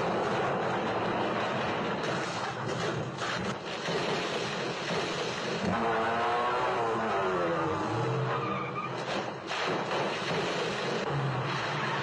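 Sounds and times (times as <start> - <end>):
tyres squealing: 8.0 - 9.0.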